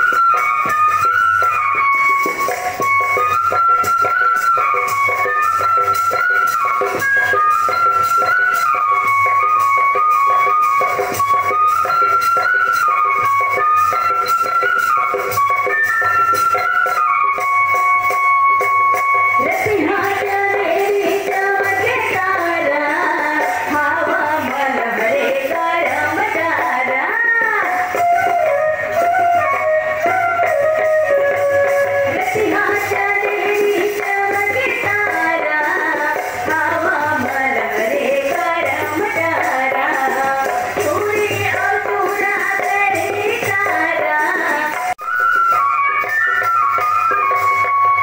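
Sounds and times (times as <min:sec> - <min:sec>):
instrumental backing: 0:00.0 - 0:48.0
music accompaniment: 0:00.0 - 0:48.0
woman singing into microphone: 0:19.4 - 0:28.6, 0:32.1 - 0:45.0.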